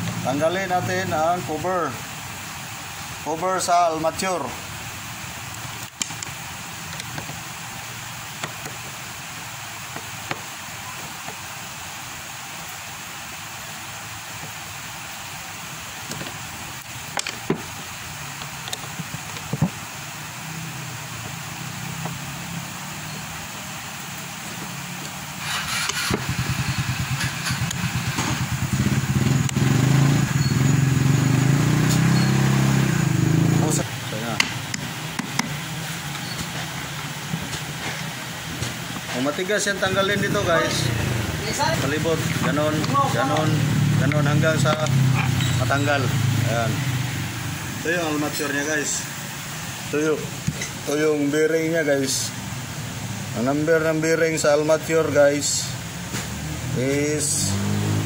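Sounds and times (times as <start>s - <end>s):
steady background noise: 0.0s - 58.0s
vehicle engine running: 25.4s - 36.1s, 39.8s - 48.4s.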